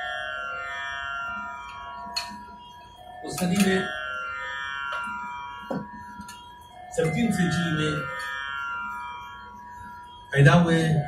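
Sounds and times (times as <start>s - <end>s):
musical drone of held tones: 0.0s - 11.0s.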